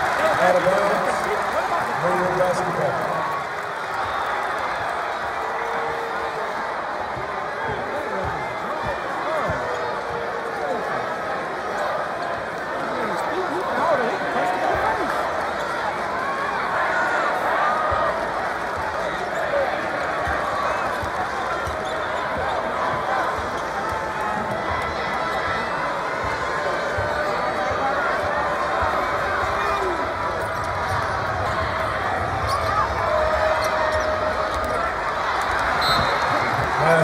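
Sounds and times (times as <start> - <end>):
crowd chattering and calling out: 0.0 - 37.0.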